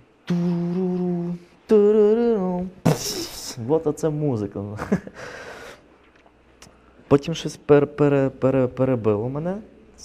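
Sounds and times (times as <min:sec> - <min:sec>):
man humming: 0:00.0 - 0:03.7.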